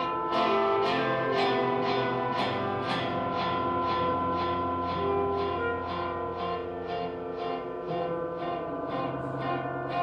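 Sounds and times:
electric guitar notes: 0.0s - 10.0s
electronic drones: 0.0s - 10.0s
saxophone: 0.0s - 10.0s
trumpet: 0.0s - 10.0s.

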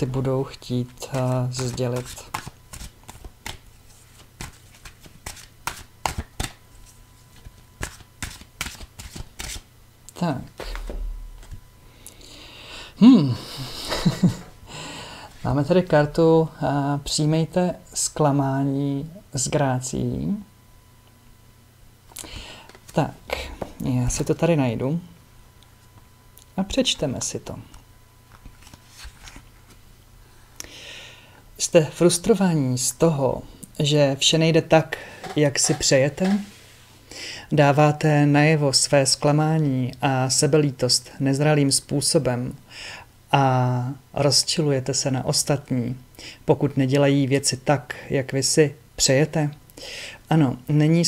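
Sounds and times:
cards being shuffled: 0.7s - 9.6s, 28.3s - 29.8s, 35.2s - 36.6s.

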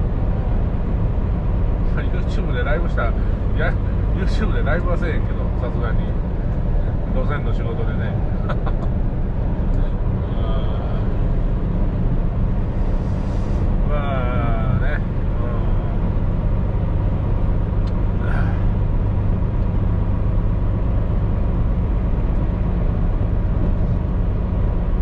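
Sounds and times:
diesel engine drone: 0.0s - 25.0s
tyre and road noise: 0.0s - 25.0s.

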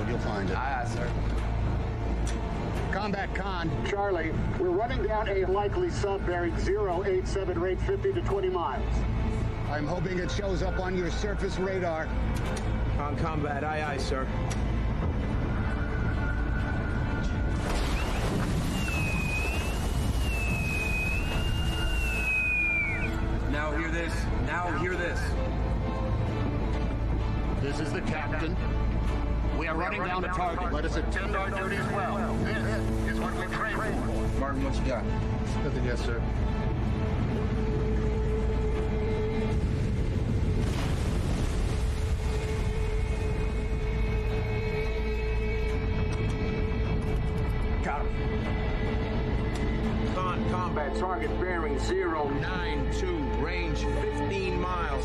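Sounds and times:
high wavering pipe whistle: 17.9s - 23.3s
low rumble: 36.2s - 50.7s.

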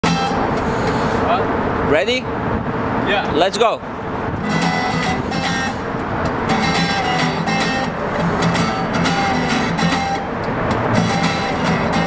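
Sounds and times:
urban traffic noise: 0.0s - 12.0s.

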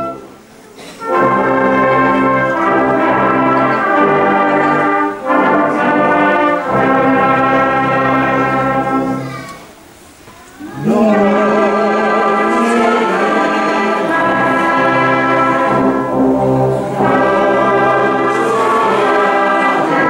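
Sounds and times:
wind band brass chords: 0.0s - 10.0s, 10.6s - 20.0s.

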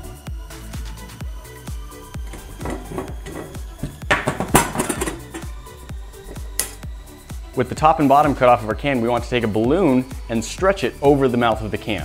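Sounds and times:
background music with steady beat: 0.0s - 12.0s
metal can clatter and scraping: 2.2s - 6.8s.

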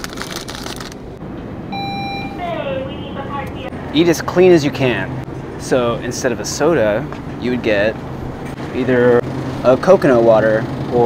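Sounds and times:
plastic snack bag crinkling: 0.0s - 1.1s
short electronic beep: 1.7s - 2.5s.

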